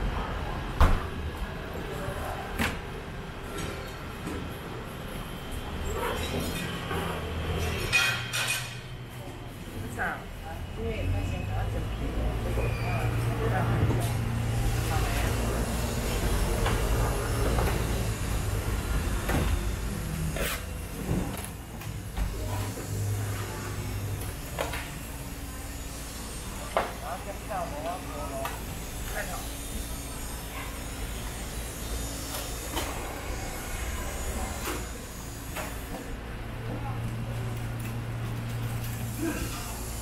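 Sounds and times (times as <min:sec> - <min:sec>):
market background rumble: 0:00.0 - 0:40.0.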